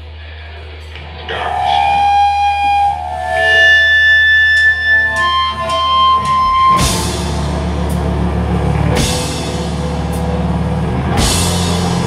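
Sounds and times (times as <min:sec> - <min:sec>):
amplifier hum: 0:00.0 - 0:12.0
electric guitar sustained notes: 0:00.9 - 0:12.0
drum or cymbal hits: 0:05.4 - 0:12.0.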